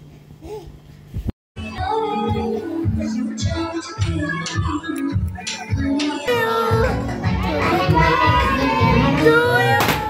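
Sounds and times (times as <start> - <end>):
song with steady beat: 1.6 - 10.0.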